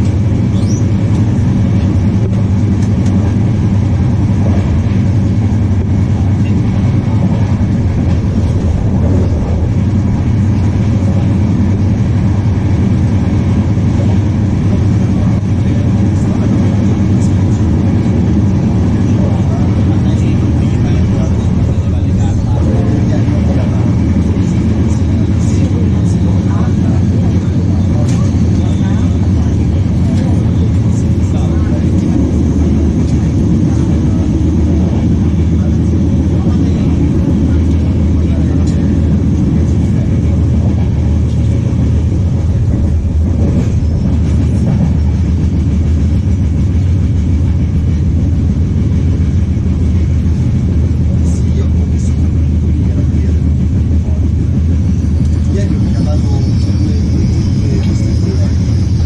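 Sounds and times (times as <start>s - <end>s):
train wheels rumbling on track: 0.0s - 59.0s.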